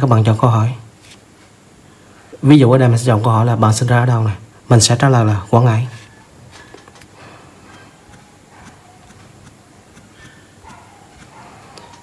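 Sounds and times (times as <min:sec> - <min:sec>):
fingertip tapping touchscreen: 0:07.6 - 0:11.4.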